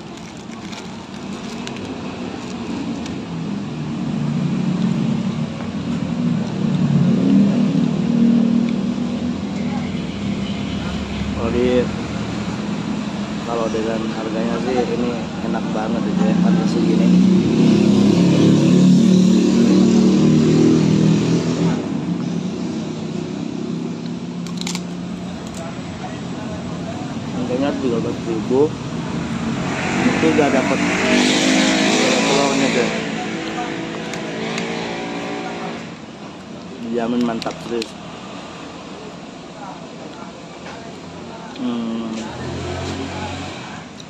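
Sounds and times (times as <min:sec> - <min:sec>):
road traffic passing: 0:00.0 - 0:44.0
voices: 0:25.0 - 0:44.0.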